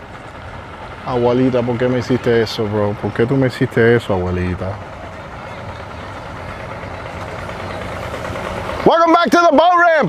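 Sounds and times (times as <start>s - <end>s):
boat motors idling: 0.0s - 10.0s.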